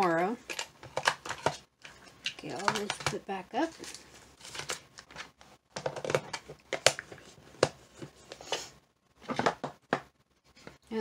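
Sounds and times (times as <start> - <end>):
plastic box clicks and knocks: 5.7 - 7.8, 9.2 - 10.1.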